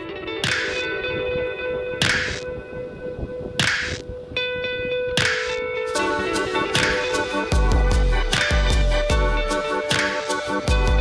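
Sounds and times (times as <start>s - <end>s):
held music chords: 0.0s - 11.0s
whip-like percussive hits: 0.4s - 0.9s, 2.0s - 2.5s, 3.6s - 4.1s, 5.2s - 5.6s, 6.8s - 7.1s, 8.3s - 9.0s, 9.9s - 10.7s.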